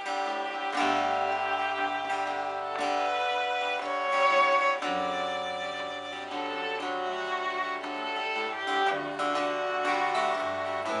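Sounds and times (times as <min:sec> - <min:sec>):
fiddle playing folk tune: 0:00.0 - 0:11.0
guitar accompaniment: 0:00.0 - 0:11.0.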